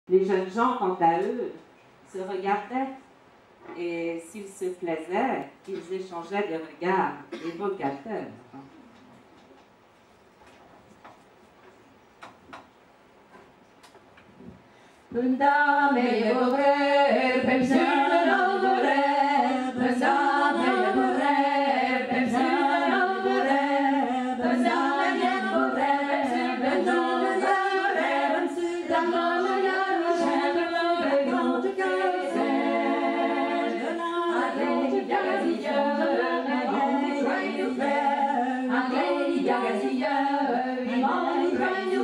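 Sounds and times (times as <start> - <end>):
women singing in harmony: 15.1 - 42.0.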